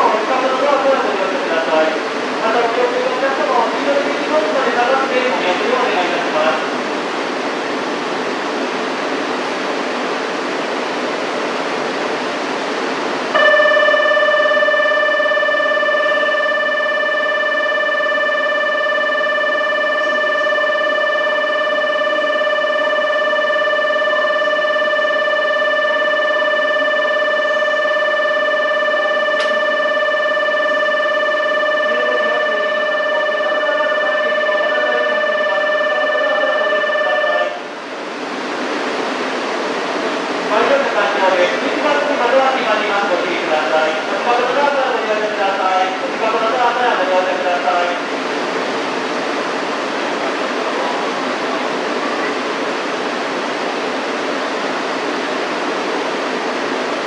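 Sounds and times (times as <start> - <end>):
train and station hum: 0.0 - 57.0
electronic departure bell tone: 13.3 - 37.7.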